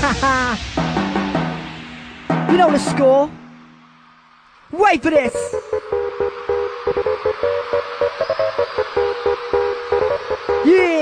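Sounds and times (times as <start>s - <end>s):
electronic dance music: 0.2s - 11.0s.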